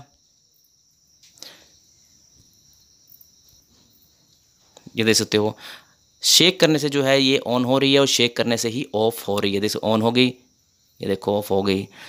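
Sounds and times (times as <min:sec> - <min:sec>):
faint high-pitched hiss: 0:00.0 - 0:12.0.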